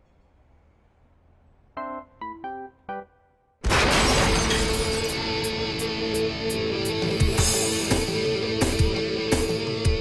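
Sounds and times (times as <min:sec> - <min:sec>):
distorted electric guitar: 0:05.0 - 0:10.0.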